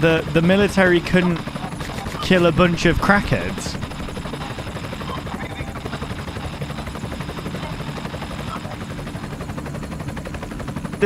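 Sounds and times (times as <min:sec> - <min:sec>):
helicopter rotor chop: 0:00.0 - 0:11.0.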